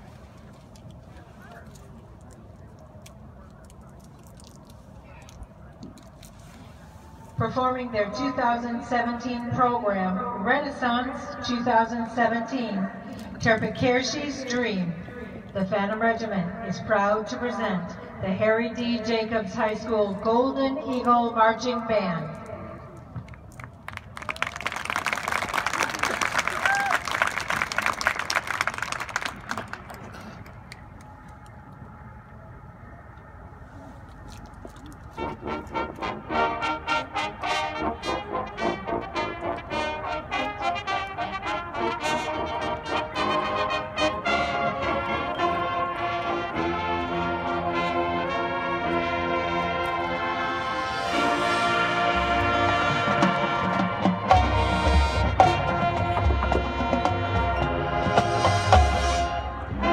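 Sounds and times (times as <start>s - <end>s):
crowd applause and cheering: 23.5s - 31.4s
marching band playing: 35.1s - 59.9s.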